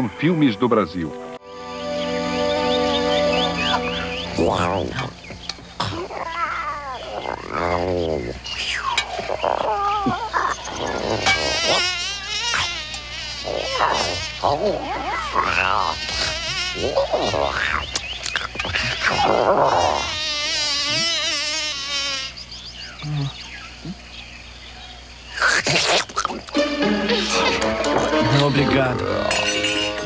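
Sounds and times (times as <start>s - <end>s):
creature trilling chirps and coos: 3.7s - 24.0s, 25.3s - 30.0s.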